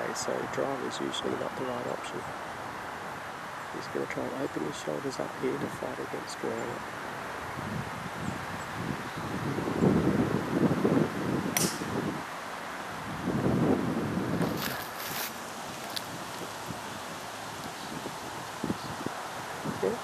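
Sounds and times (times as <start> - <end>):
wind buffeting microphone: 3.6 - 20.0
golf club striking ball: 11.5 - 12.0.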